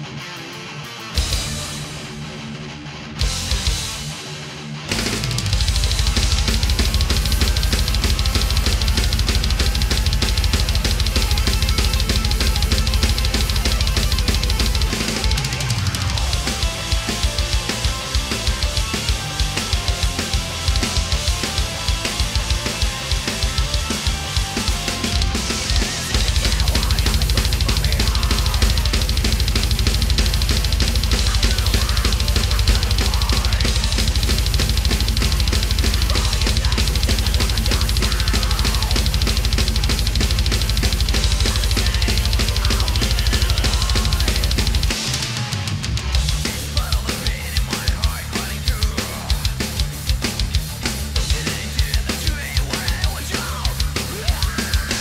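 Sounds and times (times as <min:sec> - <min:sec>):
metal song with guitars and keyboards: 0:00.0 - 0:55.0
rapid kick drum strokes: 0:01.2 - 0:02.4, 0:04.9 - 0:55.0
snare and cymbals: 0:04.9 - 0:55.0.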